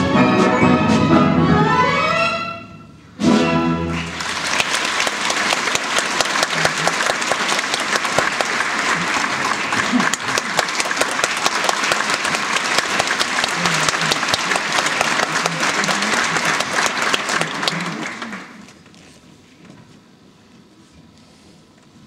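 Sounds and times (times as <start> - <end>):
audience applauding: 3.9 - 18.7.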